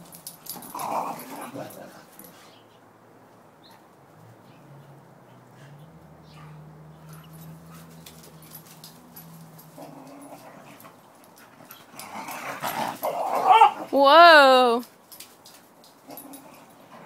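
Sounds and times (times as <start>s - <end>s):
dogs growling and scuffling: 0.0s - 2.7s, 3.7s - 14.0s, 15.1s - 17.0s.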